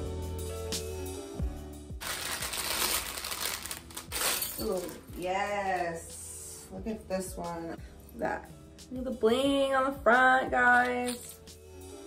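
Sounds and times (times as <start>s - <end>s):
plastic bag crinkling: 2.0s - 5.1s.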